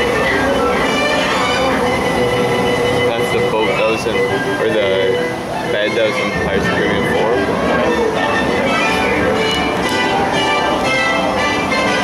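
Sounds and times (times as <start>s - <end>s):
loud steady drone: 0.0s - 12.0s.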